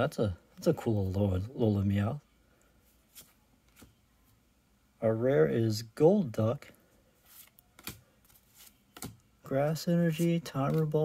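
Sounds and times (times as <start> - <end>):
trading cards sliding in hands: 3.0 - 3.9, 7.2 - 9.1
soft card flicks: 7.8 - 8.0.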